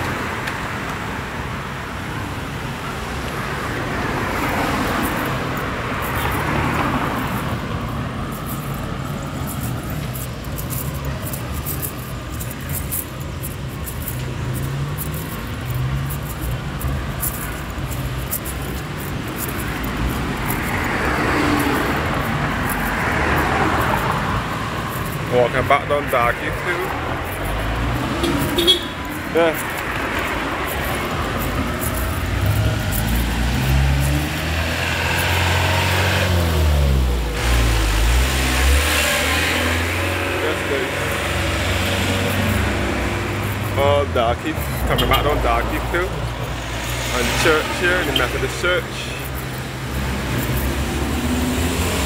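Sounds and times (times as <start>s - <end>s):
cars driving past: 0.0s - 52.0s.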